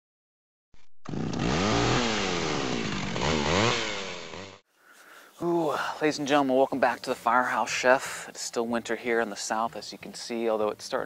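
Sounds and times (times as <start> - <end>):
small engine revving: 0.8 - 4.6.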